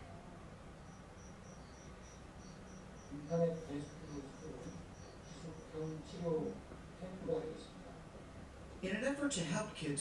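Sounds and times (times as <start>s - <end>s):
crickets chirping: 0.6s - 7.6s.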